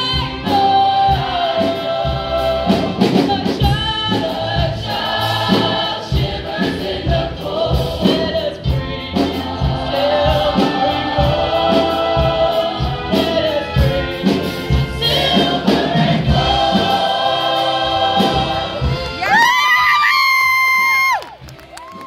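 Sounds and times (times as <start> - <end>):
choir singing: 0.0 - 19.2.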